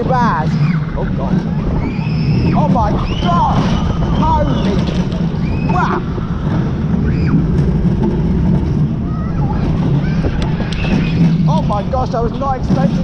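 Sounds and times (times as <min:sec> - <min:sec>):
roller coaster rumbling on steel track: 0:00.0 - 0:13.0
wind rushing over microphone: 0:00.0 - 0:13.0.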